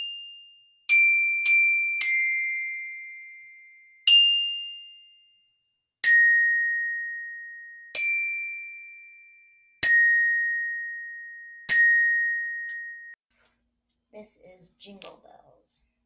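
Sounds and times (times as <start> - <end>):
glockenspiel notes ringing: 0.0 - 13.2.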